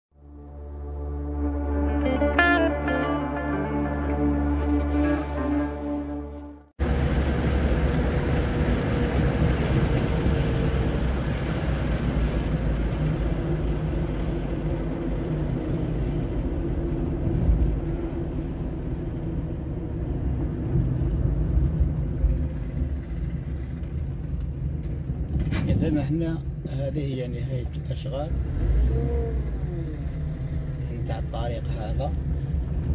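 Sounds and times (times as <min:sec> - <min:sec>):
car engine and tyre rumble: 0:03.7 - 0:32.9.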